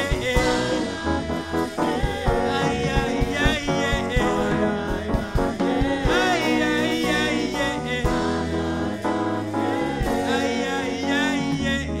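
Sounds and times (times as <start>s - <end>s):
choir singing gospel music: 0.0s - 12.0s.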